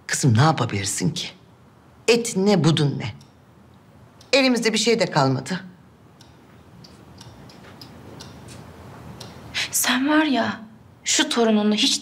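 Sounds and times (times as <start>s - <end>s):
low steady hum: 0.0s - 12.0s
faint light ticks: 6.2s - 8.6s, 9.2s - 9.4s.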